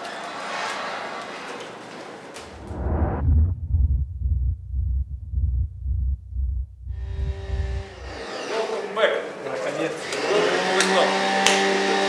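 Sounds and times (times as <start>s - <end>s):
deep throbbing bass pulse: 2.5s - 8.2s.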